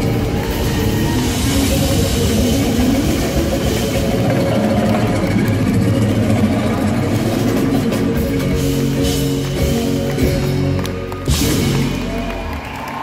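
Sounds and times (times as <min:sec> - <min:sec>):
electric bass: 0:00.0 - 0:12.8
drums: 0:00.0 - 0:13.0.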